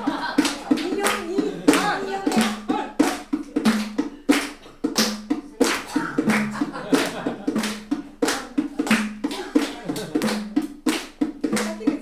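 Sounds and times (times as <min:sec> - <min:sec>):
hand clapping in rhythm: 0:00.0 - 0:12.0.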